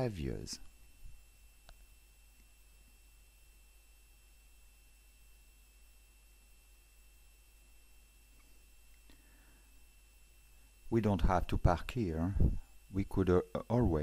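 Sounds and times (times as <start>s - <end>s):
faint background hiss and hum: 0.0s - 14.0s.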